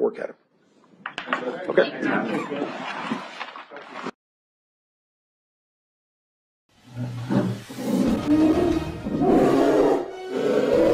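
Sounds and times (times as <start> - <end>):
animal roar sound effect: 6.8 - 10.9
music: 7.9 - 10.9.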